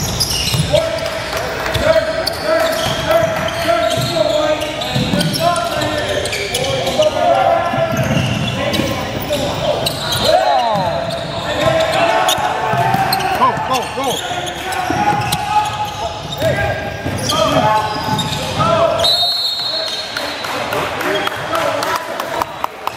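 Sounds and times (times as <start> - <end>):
voices echoing in gym: 0.0 - 22.9.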